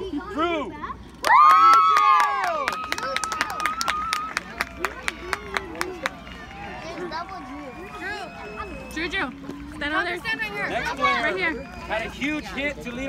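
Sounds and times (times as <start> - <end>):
children shouting yay: 1.2 - 8.9.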